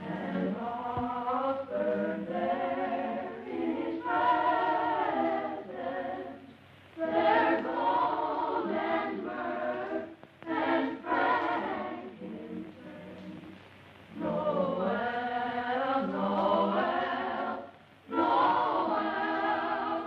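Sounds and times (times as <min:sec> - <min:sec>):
boys' choir singing a carol: 0:00.0 - 0:20.0.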